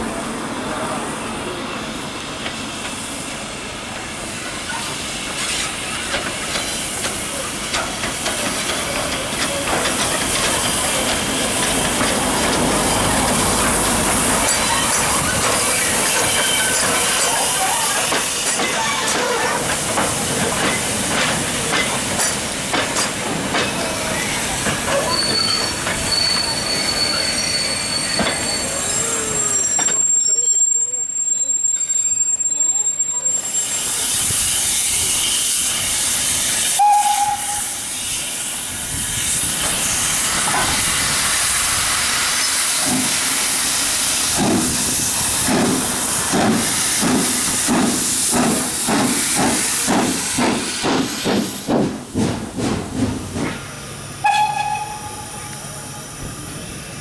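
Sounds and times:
steam locomotive hissing: 0:00.0 - 0:31.2, 0:32.5 - 0:57.0
steam whistle blast: 0:36.6 - 0:38.4, 0:54.2 - 0:55.4.

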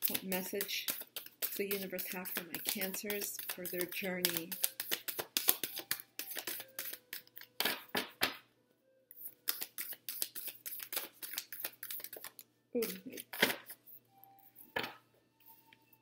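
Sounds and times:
cards being shuffled: 0:00.0 - 0:08.3, 0:09.2 - 0:13.8.

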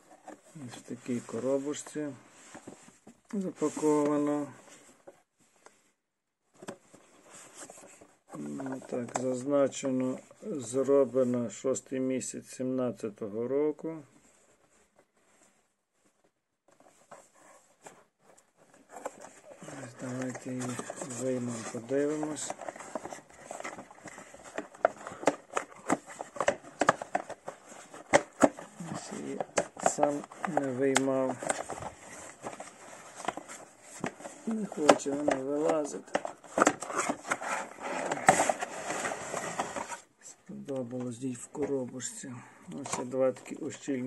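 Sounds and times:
soft rubbing and rustling: 0:00.0 - 0:11.6, 0:14.0 - 0:44.0.

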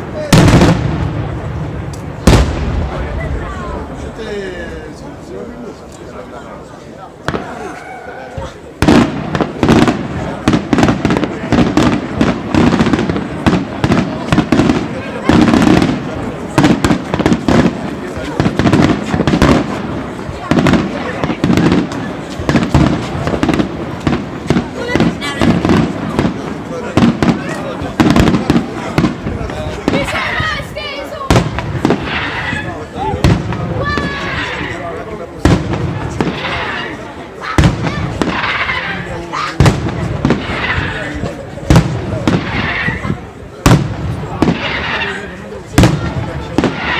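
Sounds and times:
fireworks bangs: 0:00.0 - 0:04.9, 0:07.2 - 0:46.9
fireworks crackling: 0:00.0 - 0:06.3, 0:07.1 - 0:46.9.

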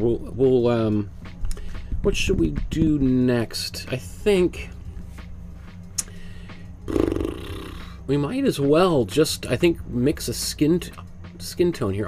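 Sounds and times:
man humming in hesitation: 0:06.9 - 0:08.0.

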